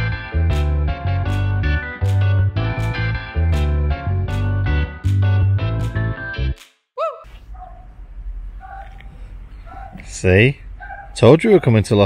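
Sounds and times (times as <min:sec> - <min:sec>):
dog yipping: 0:07.0 - 0:07.9, 0:08.6 - 0:10.1, 0:10.8 - 0:11.8.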